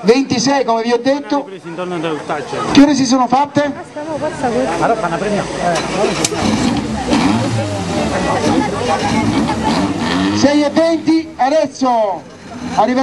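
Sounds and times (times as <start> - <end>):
crowd chatter: 0.0 - 13.0
small car engine running low: 5.1 - 11.0.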